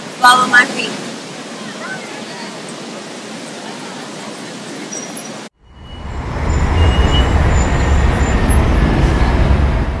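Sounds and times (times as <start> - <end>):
city traffic rumble: 0.0 - 10.0.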